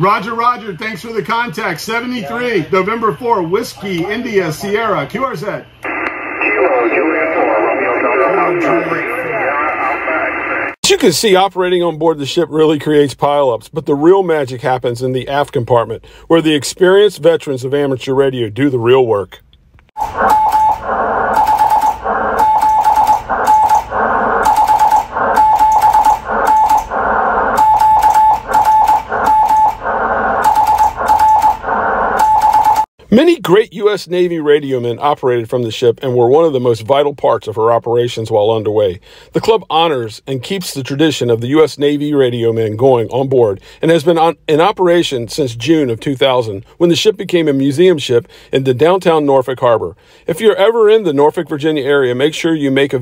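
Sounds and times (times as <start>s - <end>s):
radio voices over a speaker: 5.8s - 10.8s
morse code beeps: 20.0s - 20.8s, 21.4s - 26.9s, 27.5s - 32.9s.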